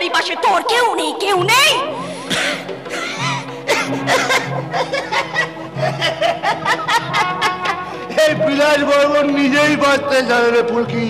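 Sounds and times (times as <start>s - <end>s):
background music drone: 0.0s - 11.0s
person laughing loudly: 2.1s - 8.4s.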